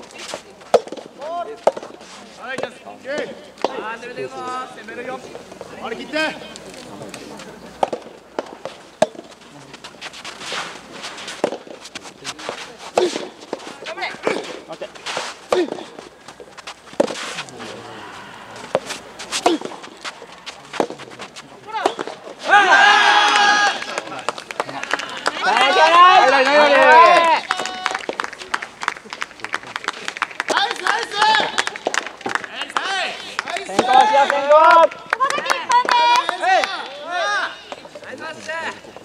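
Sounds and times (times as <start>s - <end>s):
tennis rackets hitting ball: 0.2s - 3.8s, 7.8s - 22.6s
players shouting: 17.4s - 20.6s, 21.6s - 28.2s, 30.5s - 31.8s, 32.5s - 38.8s.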